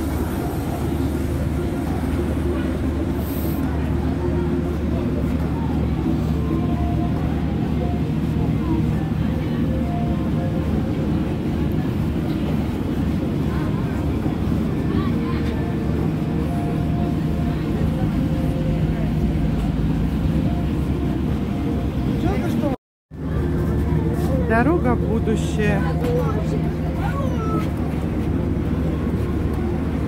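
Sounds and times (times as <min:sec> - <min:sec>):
faint voices: 0:00.0 - 0:30.0
low hum and rumble: 0:00.0 - 0:30.0.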